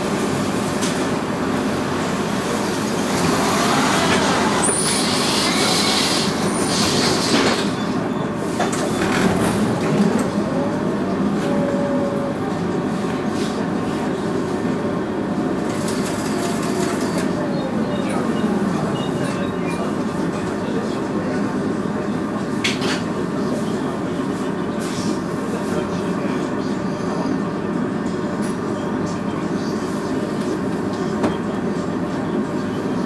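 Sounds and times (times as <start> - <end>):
tram rolling rumble: 0.0 - 33.0.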